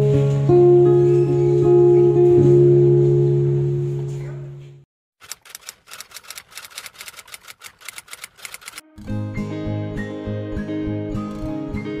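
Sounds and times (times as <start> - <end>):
rapid sharp clicks: 5.2 - 8.9.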